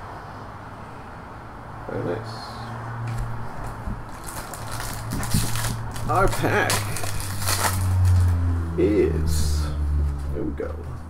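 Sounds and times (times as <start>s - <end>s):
foil pack crinkling: 4.1s - 8.4s.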